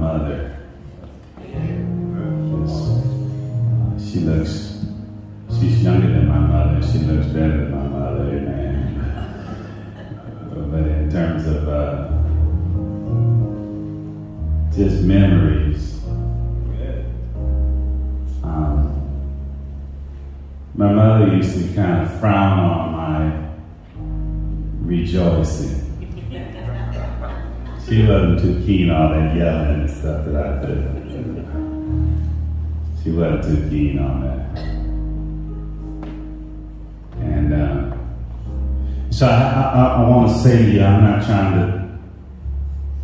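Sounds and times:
low sustained musical backing: 0.0 - 43.0.

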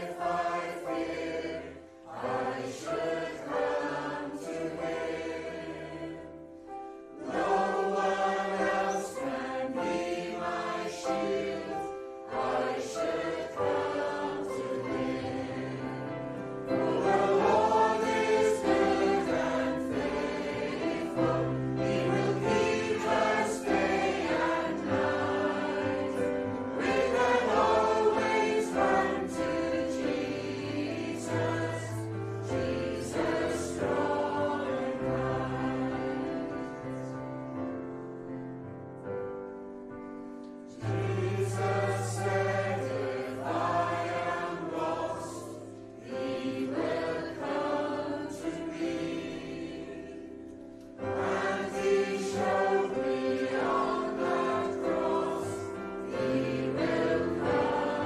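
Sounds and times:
congregation singing: 0.0 - 58.0
keyboard accompaniment: 0.0 - 58.0.

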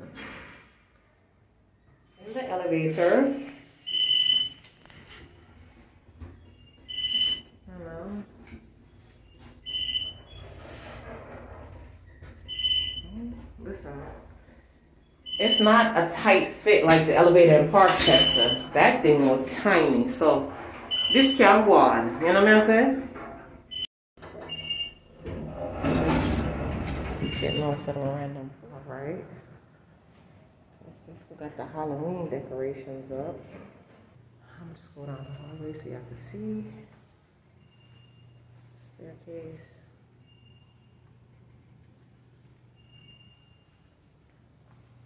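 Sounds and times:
elevator electronic beep: 3.8 - 4.7, 6.6 - 7.5, 9.3 - 10.4, 12.2 - 13.6, 15.2 - 16.0, 17.9 - 18.8, 20.8 - 21.6, 23.7 - 25.1, 27.2 - 27.9, 40.2 - 41.1, 42.7 - 43.9
elevator doors sliding open: 9.6 - 14.6, 16.8 - 28.2.

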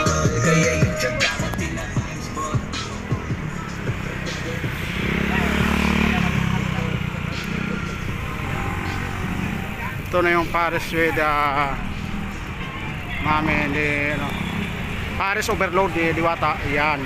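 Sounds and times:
road and wind noise: 0.0 - 17.0
motorcycle engine passing: 1.6 - 10.4.

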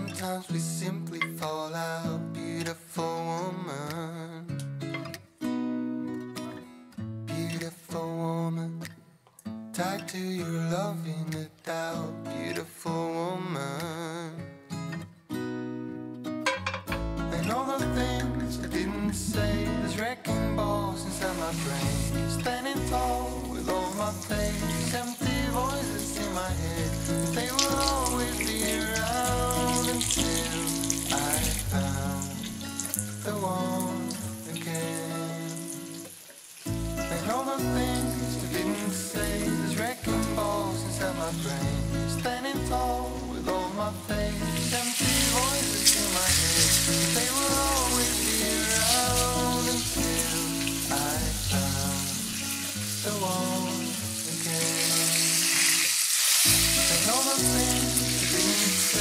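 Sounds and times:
pop song with singing: 0.0 - 5.2, 7.3 - 9.1, 9.7 - 15.0, 16.8 - 59.0
oil sizzling in a pan: 20.8 - 59.0.

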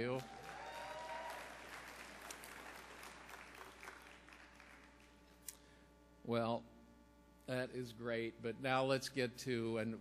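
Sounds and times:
crowd applauding: 0.0 - 5.2.

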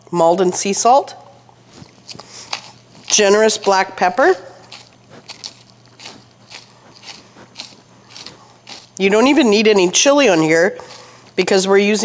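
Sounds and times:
pepper mill grinding: 1.7 - 12.0.

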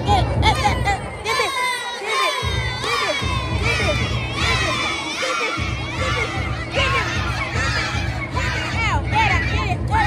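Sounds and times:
girls shouting and cheering: 0.0 - 10.0
low music beat: 0.0 - 10.0.

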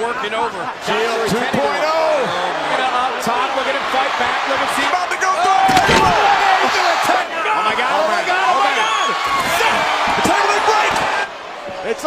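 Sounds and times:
loud arena crowd: 0.0 - 12.0.

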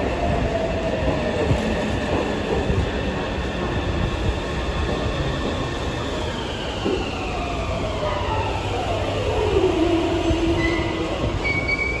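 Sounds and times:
train whine: 0.0 - 12.0
high brake squeals: 10.6 - 12.0.

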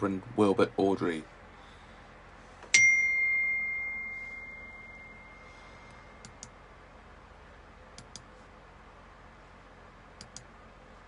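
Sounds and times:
high bell-like ding: 2.7 - 5.6.

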